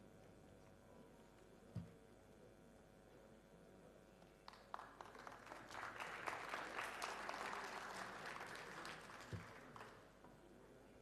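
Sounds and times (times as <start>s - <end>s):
audience clapping: 4.4s - 10.1s.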